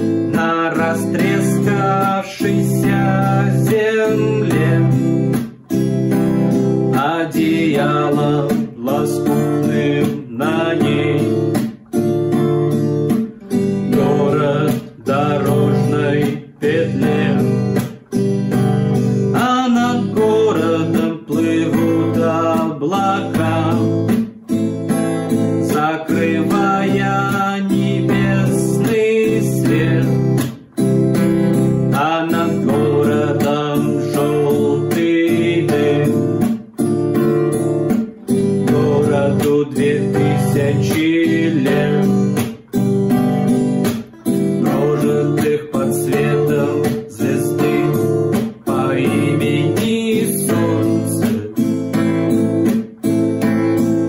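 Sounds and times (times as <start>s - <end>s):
classical guitar strumming: 0.0s - 54.0s
man singing: 0.0s - 54.0s.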